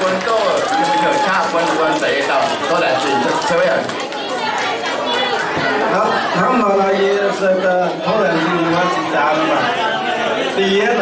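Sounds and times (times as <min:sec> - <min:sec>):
man talking over a microphone: 0:00.0 - 0:03.9, 0:05.9 - 0:09.8, 0:10.5 - 0:11.0
chatter of voices: 0:00.0 - 0:11.0.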